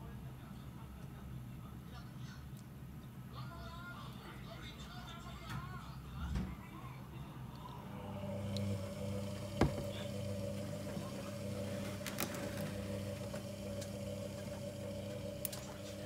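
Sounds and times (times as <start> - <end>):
washing machine motor hum: 7.8 - 16.0.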